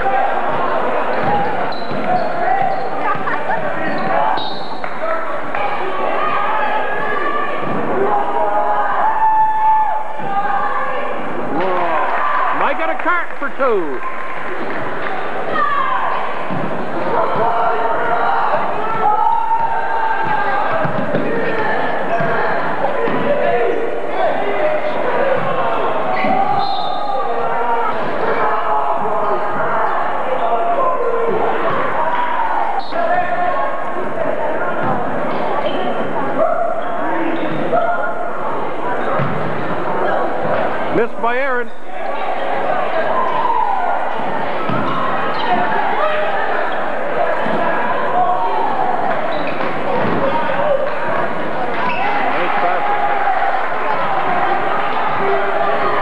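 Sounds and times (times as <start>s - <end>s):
spectators chattering and shouting: 0.0s - 56.0s.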